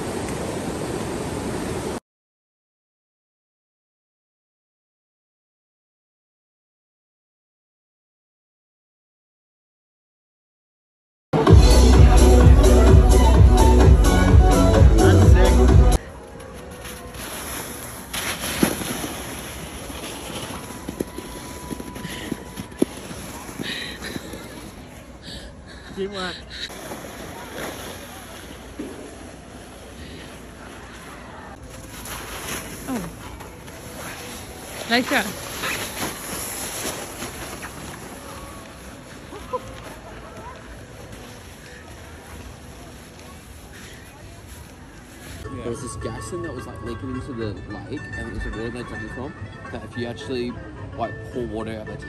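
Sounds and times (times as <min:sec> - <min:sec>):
sled scraping over snow: 0:16.0 - 0:45.5.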